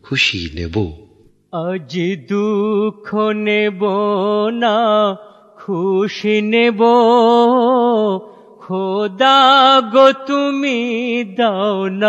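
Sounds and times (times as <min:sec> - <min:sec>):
man singing with vibrato: 0:01.5 - 0:12.0.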